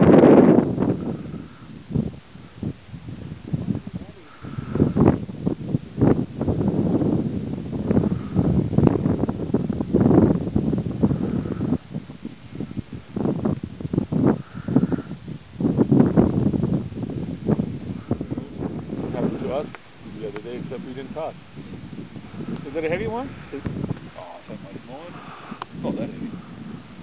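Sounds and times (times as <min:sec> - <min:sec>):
gusty wind on microphone: 0:00.0 - 0:27.0.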